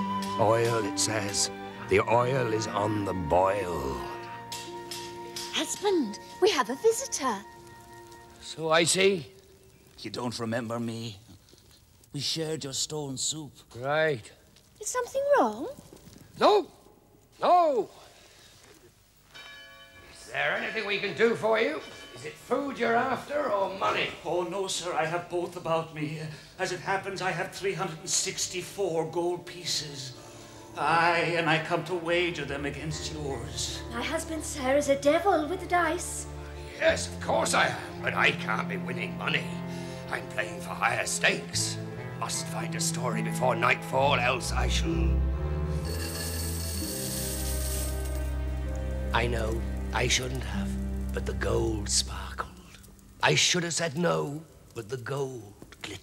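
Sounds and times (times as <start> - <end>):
background music: 0.0 - 10.9, 19.4 - 55.1
bell chime ringing: 19.3 - 23.6, 45.7 - 48.4
coins poured onto stone: 45.8 - 48.3.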